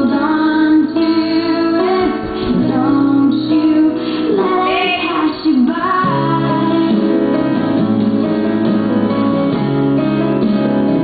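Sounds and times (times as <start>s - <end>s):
woman singing: 0.0s - 7.6s.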